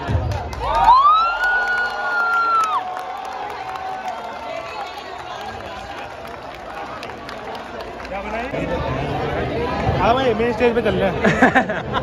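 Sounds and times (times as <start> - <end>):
crowd voices talking and calling: 0.0 - 12.0.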